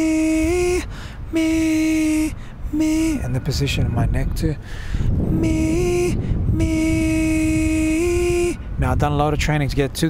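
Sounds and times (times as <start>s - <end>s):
man singing in falsetto: 0.0s - 3.3s, 5.3s - 8.7s
breath between notes: 0.9s - 1.2s, 4.6s - 5.2s.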